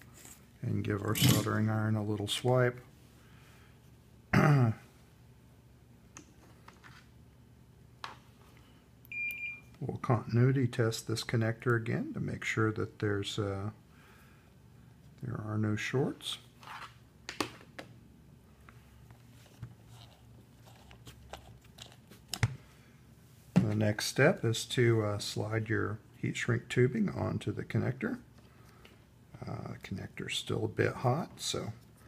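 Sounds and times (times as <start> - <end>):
low steady hum: 0.0 - 32.0
multimeter beep: 9.1 - 9.8.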